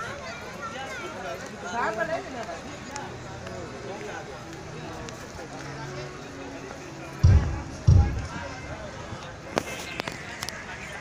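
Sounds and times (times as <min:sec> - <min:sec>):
faint crowd noise: 0:00.0 - 0:11.0
deep low thumps: 0:07.2 - 0:08.7.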